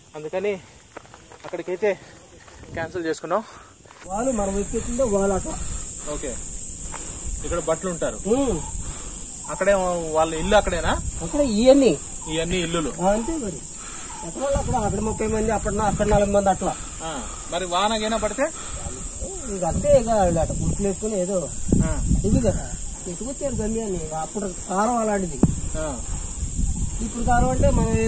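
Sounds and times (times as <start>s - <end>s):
men talking: 1.3s - 28.0s
high-pitched insect drone: 4.1s - 28.0s.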